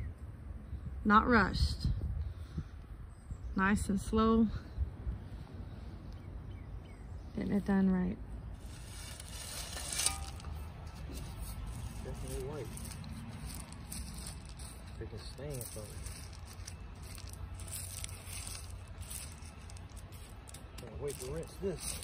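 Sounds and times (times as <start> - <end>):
pebbles rattling and scraping: 8.6 - 22.0.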